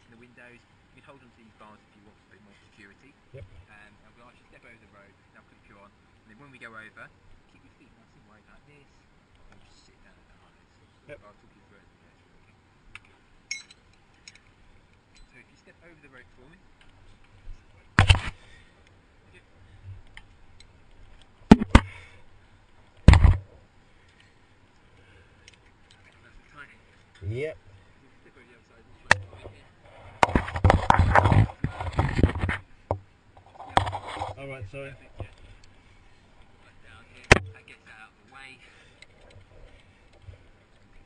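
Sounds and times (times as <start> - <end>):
metal hardware clinking: 13.5 - 14.5.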